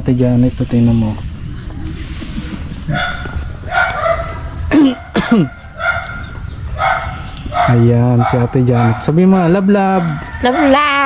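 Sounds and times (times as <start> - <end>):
chicken calling: 1.4 - 8.4.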